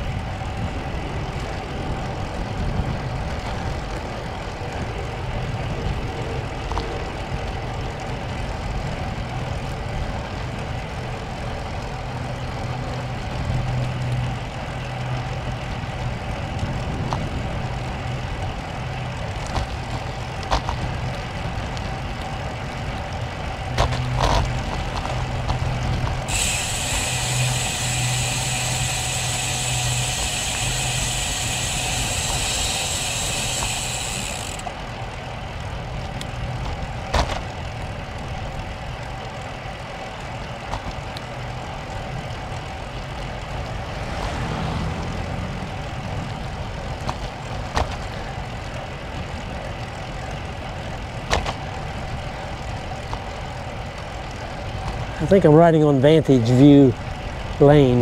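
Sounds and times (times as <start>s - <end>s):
wind rush on microphone: 0.0s - 12.1s, 15.7s - 39.2s
bike tyre noise: 0.0s - 58.0s
high buzz: 26.2s - 34.7s.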